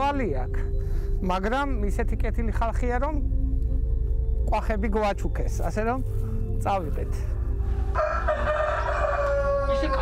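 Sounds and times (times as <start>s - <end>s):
rooster crowing: 7.8s - 10.0s.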